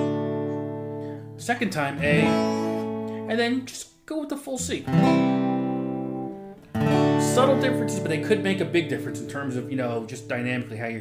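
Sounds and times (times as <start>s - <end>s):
acoustic guitar chord strummed: 0.0s - 3.8s, 4.6s - 11.0s.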